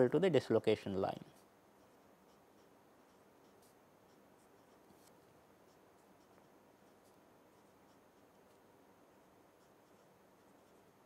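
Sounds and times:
marker pen writing on paper: 1.3 - 11.0.

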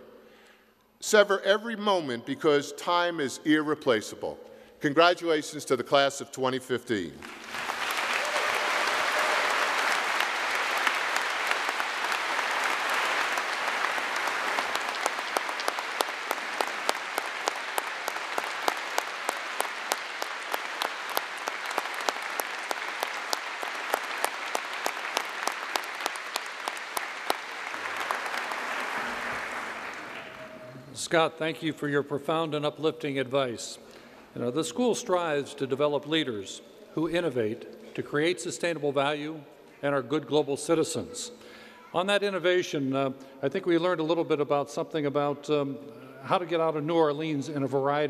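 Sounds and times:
audience applauding: 7.2 - 30.9.

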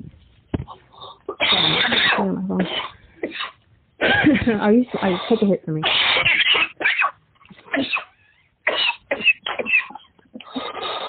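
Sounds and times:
woman's rough vocal burst: 1.3 - 6.6.

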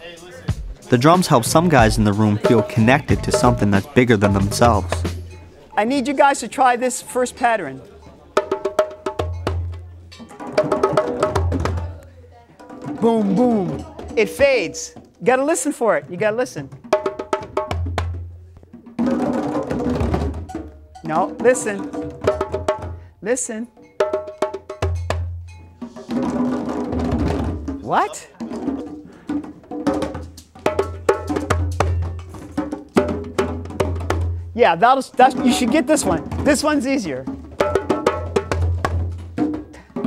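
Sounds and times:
hand drums playing rhythm: 0.0 - 6.3, 7.8 - 40.0.

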